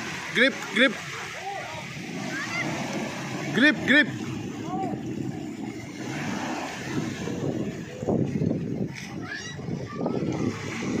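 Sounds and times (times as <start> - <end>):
motorboat engine running: 0.0 - 11.0
wind on microphone: 1.8 - 11.0.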